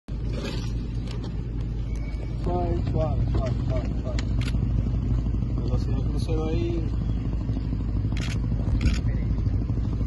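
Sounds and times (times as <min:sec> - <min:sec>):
vehicle engine rumble: 0:00.1 - 0:10.0.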